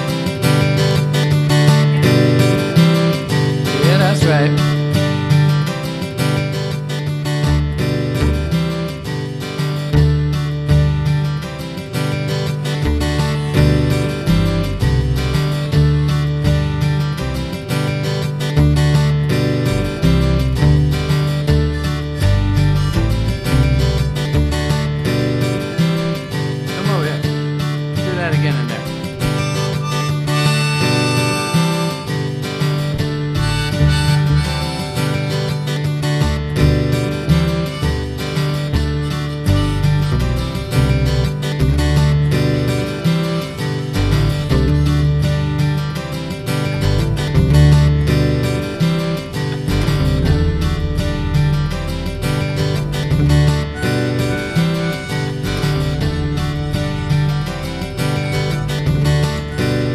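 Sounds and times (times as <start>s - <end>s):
acoustic guitar strumming: 0.0s - 59.9s
harmonica solo: 29.2s - 35.6s, 37.3s - 40.0s, 53.3s - 59.9s.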